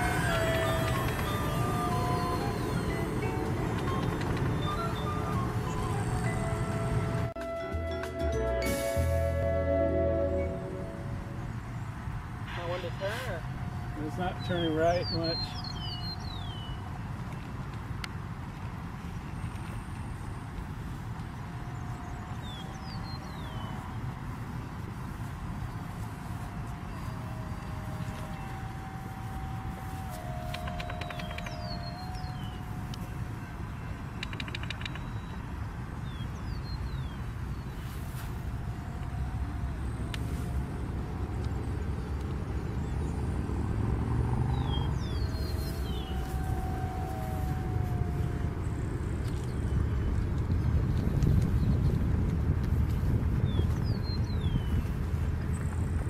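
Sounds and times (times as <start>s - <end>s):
model jet fan whine: 0.0s - 7.4s, 10.2s - 36.4s, 37.1s - 51.8s
wind rumbling on microphone: 0.0s - 7.4s, 10.4s - 56.0s.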